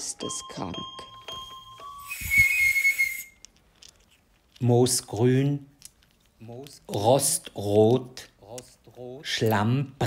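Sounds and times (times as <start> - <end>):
hiss with wavering whistle: 2.0 - 3.4.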